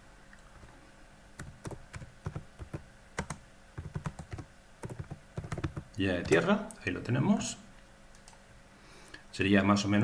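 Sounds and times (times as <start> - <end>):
keyboard typing clicks: 1.4 - 6.5.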